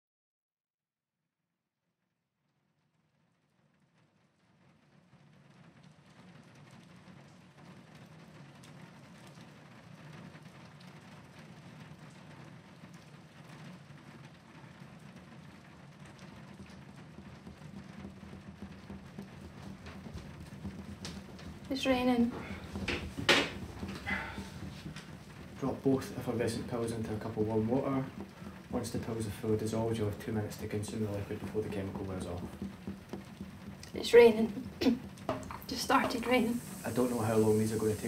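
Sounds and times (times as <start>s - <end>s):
rain falling: 3.0s - 38.0s.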